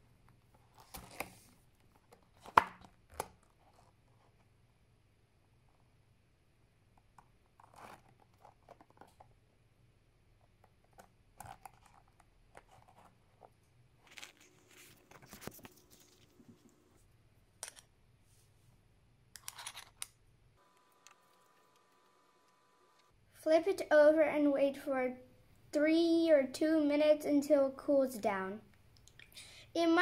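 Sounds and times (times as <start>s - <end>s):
plastic sheet rustling and crinkling: 14.0s - 16.8s.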